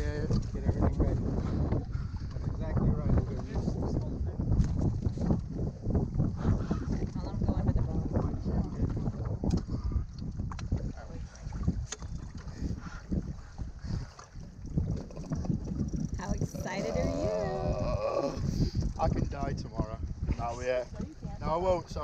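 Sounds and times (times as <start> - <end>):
water slapping boat hull: 0.0 - 22.0
wind buffeting microphone: 0.0 - 22.0
person speaking: 16.2 - 17.9.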